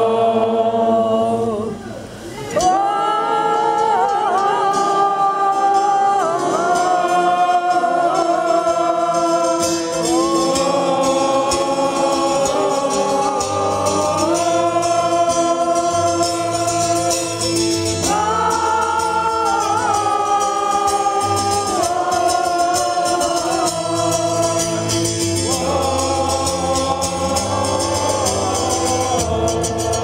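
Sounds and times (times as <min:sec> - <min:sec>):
strummed plucked strings: 0:02.6 - 0:30.0.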